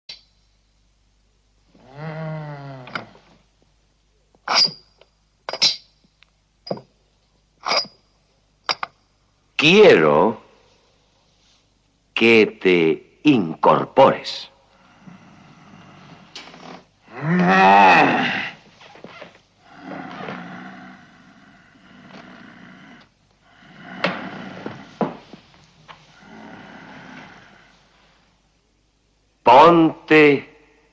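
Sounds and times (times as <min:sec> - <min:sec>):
man groaning: 0:17.1 - 0:18.6
man's deep groan: 0:17.1 - 0:18.6, 0:19.6 - 0:25.0.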